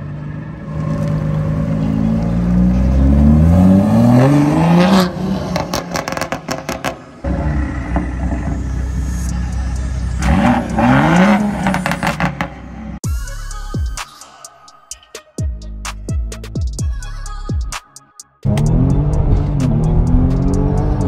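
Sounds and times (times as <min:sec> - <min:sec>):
car engine revving: 0:00.0 - 0:13.0, 0:18.4 - 0:21.0.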